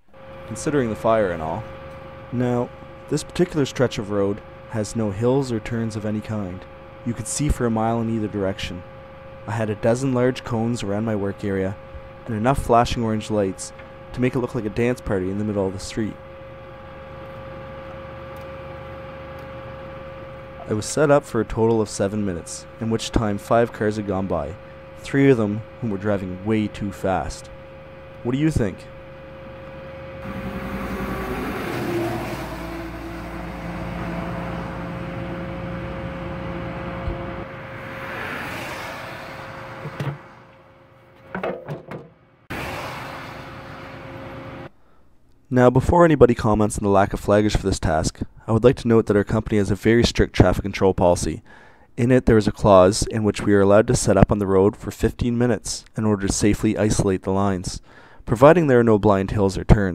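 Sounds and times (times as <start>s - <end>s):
road traffic passing: 0.0s - 3.2s, 16.2s - 20.8s, 24.5s - 25.0s, 27.4s - 41.3s, 42.2s - 44.7s
vehicle engine idling: 0.0s - 12.4s, 13.0s - 41.1s
steady hum with tone: 0.0s - 59.8s.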